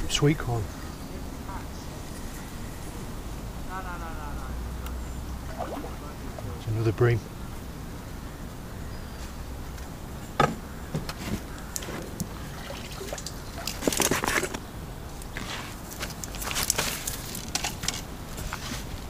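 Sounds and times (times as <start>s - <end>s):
water splashing: 5.4s - 7.1s, 12.3s - 14.4s.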